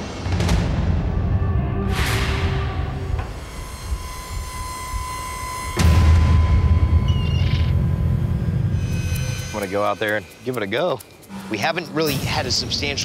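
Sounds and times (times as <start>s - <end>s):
low drone: 0.0s - 13.0s
thin held high tone: 3.3s - 12.4s.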